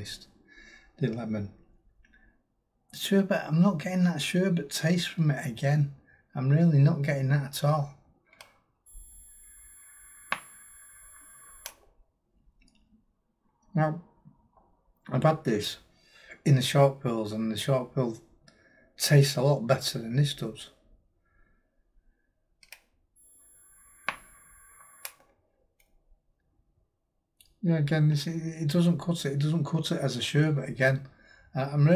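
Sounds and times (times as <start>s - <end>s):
vape airflow hiss and sizzle: 8.9s - 11.7s, 23.2s - 25.0s
faint high electrical whine: 8.9s - 12.0s, 23.2s - 25.3s
e-cigarette click: 10.2s - 10.6s, 24.0s - 24.4s.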